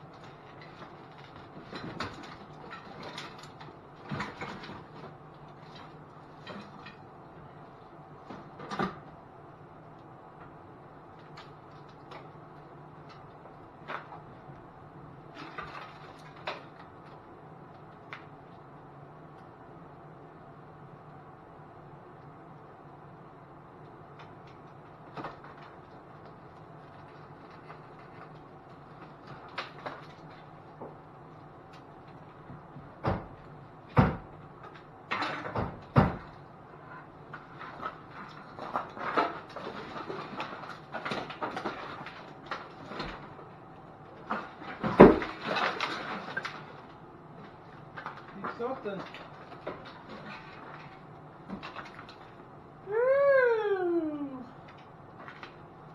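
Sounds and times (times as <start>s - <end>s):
faint steady hum: 0.0s - 55.9s
objects knocking and rattling: 0.1s - 7.1s, 32.4s - 36.4s, 44.2s - 52.4s.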